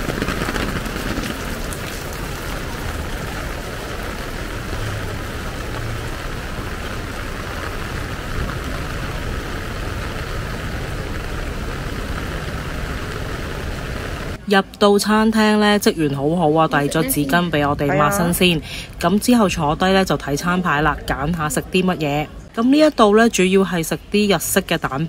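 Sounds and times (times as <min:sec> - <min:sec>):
rain falling on a wet street: 0:00.0 - 0:14.4, 0:15.0 - 0:25.0.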